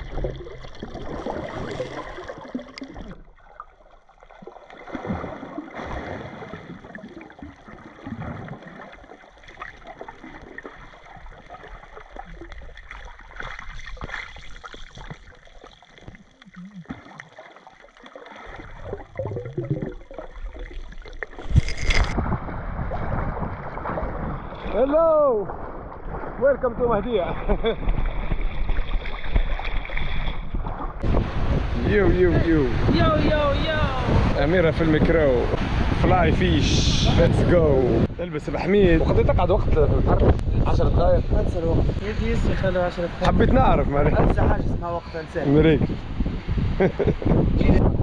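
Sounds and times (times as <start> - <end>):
loud splashing: 0.0 - 3.3, 4.4 - 12.2, 16.5 - 30.4
muffled underwater water movement: 0.0 - 42.2.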